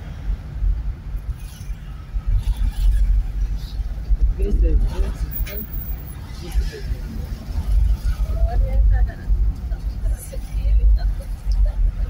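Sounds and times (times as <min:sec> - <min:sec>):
car driving road noise: 0:00.0 - 0:12.0.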